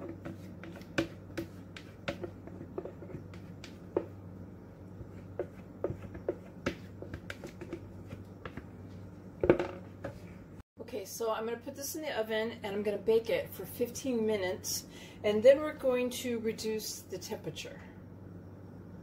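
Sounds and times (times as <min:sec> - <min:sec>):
spatula scraping plastic bowl: 0:00.0 - 0:04.2, 0:04.9 - 0:09.1
steady low hum: 0:00.0 - 0:19.0.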